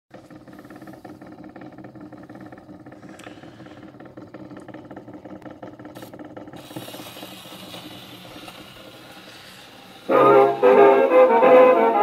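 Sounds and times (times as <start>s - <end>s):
gramophone turntable hum: 0.1s - 12.0s.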